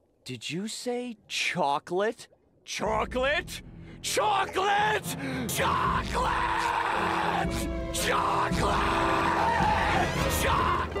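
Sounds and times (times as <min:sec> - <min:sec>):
music: 0:03.0 - 0:11.0
distorted shouting: 0:05.6 - 0:11.0.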